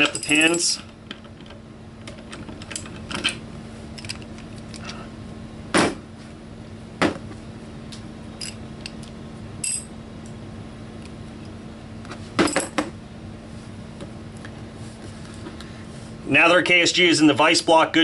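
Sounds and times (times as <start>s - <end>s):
steady low hum: 0.0s - 18.0s
ringing metallic clink: 9.6s - 9.9s.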